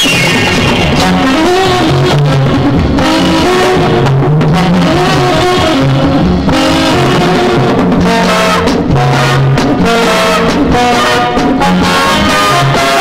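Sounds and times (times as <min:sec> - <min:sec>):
bass line: 0:00.0 - 0:13.0
guitar: 0:00.0 - 0:13.0.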